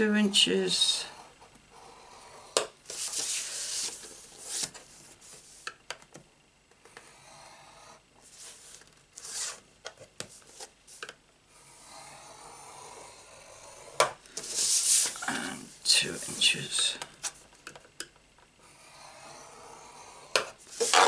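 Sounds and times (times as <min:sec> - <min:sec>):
card sliding across board: 0:02.4 - 0:05.7, 0:08.2 - 0:09.6, 0:13.8 - 0:15.2, 0:18.8 - 0:21.0
stylus scratching card: 0:18.8 - 0:21.0.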